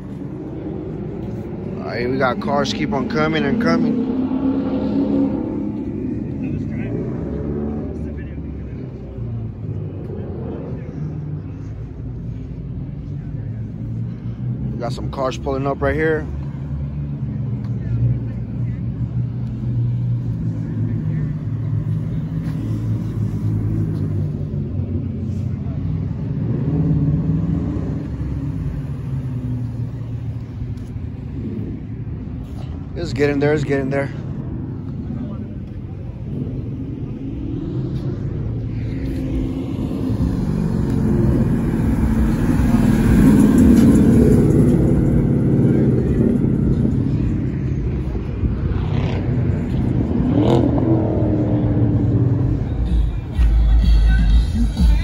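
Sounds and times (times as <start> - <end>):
car engines rumbling: 0.0 - 55.0.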